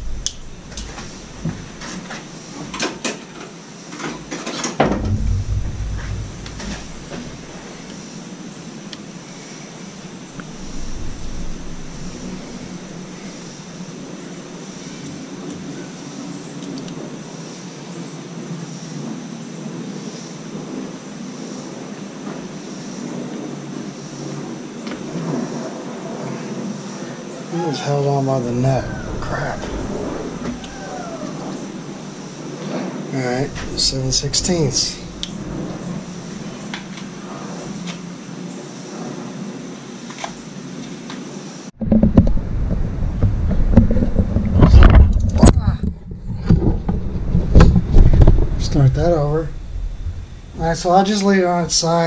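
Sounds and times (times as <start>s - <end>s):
low scraping and handling noise: 0.0s - 9.1s, 9.9s - 15.7s, 28.2s - 38.1s, 41.7s - 52.0s
sharp metal clicks and knocks: 4.3s - 8.0s.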